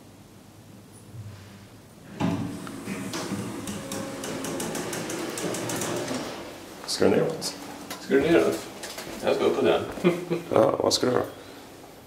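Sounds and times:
elevator doors sliding open: 2.1s - 6.6s
door operator clattering with clicks: 2.2s - 6.4s.

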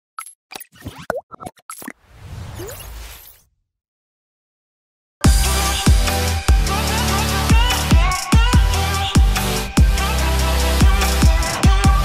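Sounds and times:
cartoon plop and pop effects: 0.2s - 2.0s.

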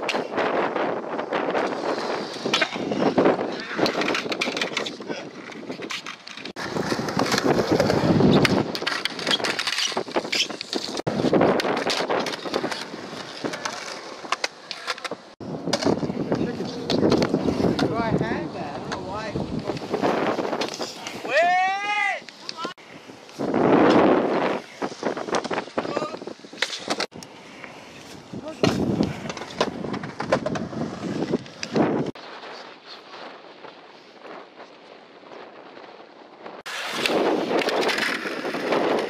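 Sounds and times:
wheels rolling on concrete: 0.0s - 39.0s.

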